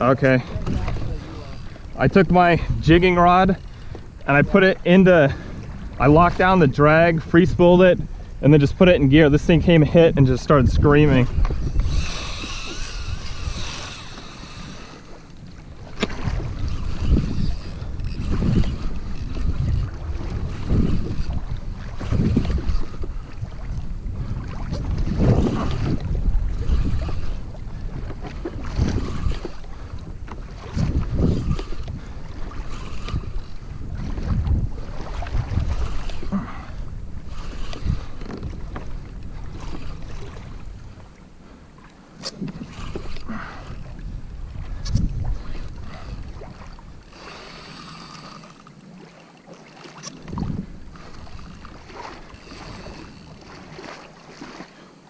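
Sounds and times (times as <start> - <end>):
water slapping against kayak hull: 0.0 - 7.4, 10.7 - 54.9
wind buffeting microphone: 0.0 - 48.6, 50.0 - 54.6
fishing reel drag screaming: 0.6 - 4.5, 11.0 - 15.5, 16.4 - 21.4, 26.5 - 27.6, 28.6 - 29.9, 30.9 - 33.8, 35.3 - 38.4, 42.2 - 43.8, 45.4 - 48.7, 50.8 - 53.7.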